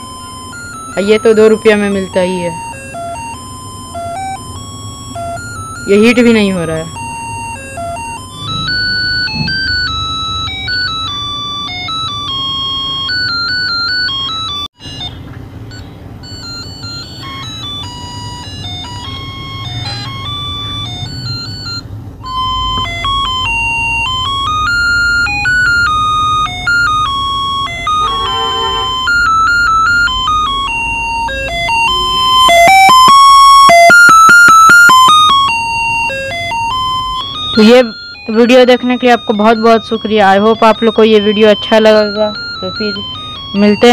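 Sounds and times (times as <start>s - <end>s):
electronic beeping tune: 0.0s - 43.9s.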